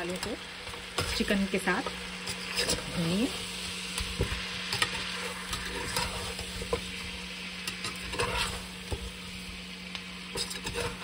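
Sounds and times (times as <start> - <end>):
chicken sizzling in hot oil: 0.0 - 11.0
metal spatula scraping pot: 2.2 - 3.3, 4.7 - 7.0, 7.6 - 9.0, 10.3 - 11.0.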